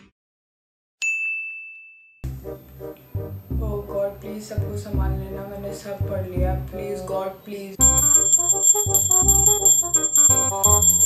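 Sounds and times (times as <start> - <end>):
bell ding: 1.0 - 2.2, 7.8 - 11.0
background music: 2.2 - 11.0.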